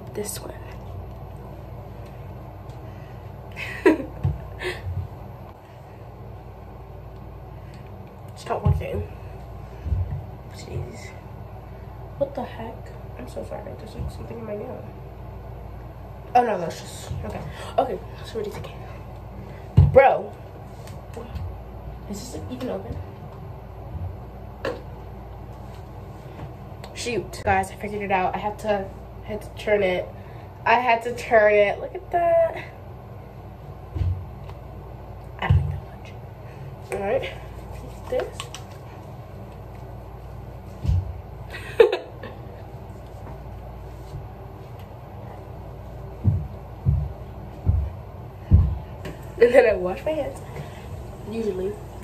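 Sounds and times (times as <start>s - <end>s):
low room hum: 0.0s - 52.0s.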